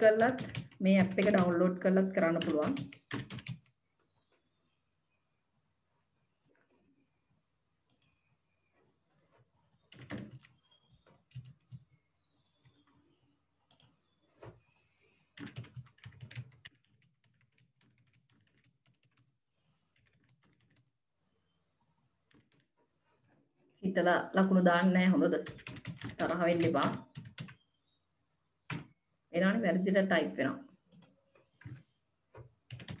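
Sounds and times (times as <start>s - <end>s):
computer keyboard typing: 0.0s - 3.8s, 9.8s - 11.9s, 13.7s - 14.0s, 15.3s - 19.3s, 19.9s - 20.9s, 25.4s - 27.6s, 28.7s - 29.0s, 30.9s - 33.0s.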